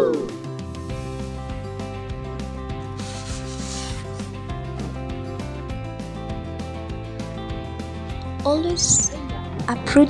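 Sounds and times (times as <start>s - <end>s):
background music: 0.0s - 10.0s
rubbing scraping noise: 2.9s - 4.9s.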